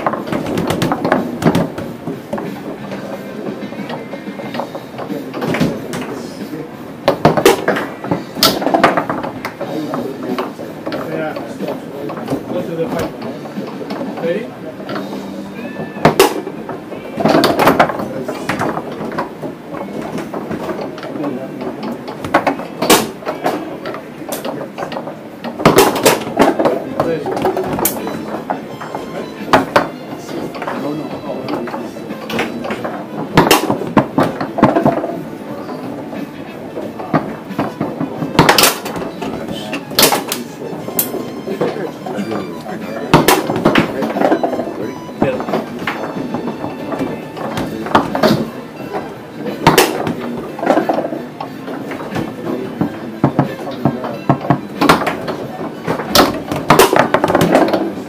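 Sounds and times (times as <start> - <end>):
foosball ball cracking: 0.0 - 58.0
foosball rods clacking: 0.0 - 58.0
murmur of voices: 0.0 - 58.0.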